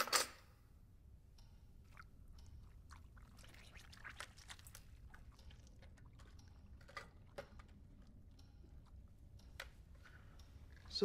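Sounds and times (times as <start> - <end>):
wet chewing: 1.9 - 11.0.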